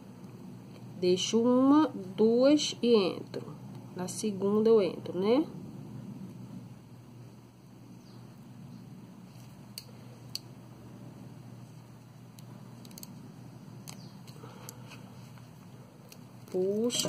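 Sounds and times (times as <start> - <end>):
low room hum: 0.0 - 17.0.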